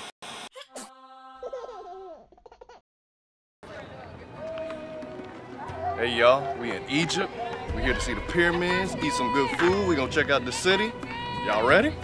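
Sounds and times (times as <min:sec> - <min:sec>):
faint voices outdoors: 0:03.6 - 0:12.0.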